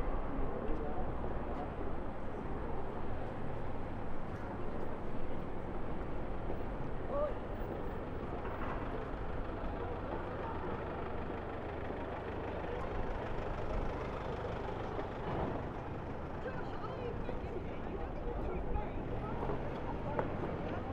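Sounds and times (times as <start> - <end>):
engine and tyre rumble: 0.0 - 20.9
people's voices: 9.4 - 15.1, 16.2 - 20.9.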